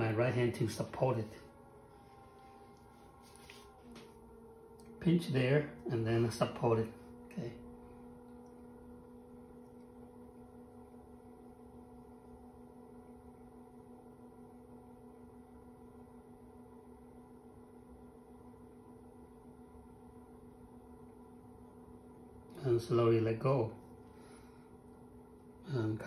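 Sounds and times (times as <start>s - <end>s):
potter's wheel humming: 0.0s - 26.0s.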